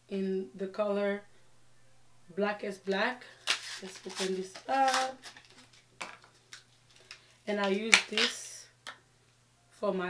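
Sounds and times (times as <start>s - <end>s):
packaging handling noise: 2.9s - 8.4s
packaging clicking open: 3.4s - 8.4s.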